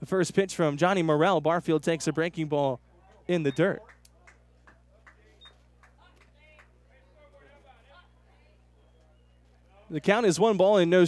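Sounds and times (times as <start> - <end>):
low electrical hum: 0.0 - 11.0
faint voices talking: 1.9 - 11.0.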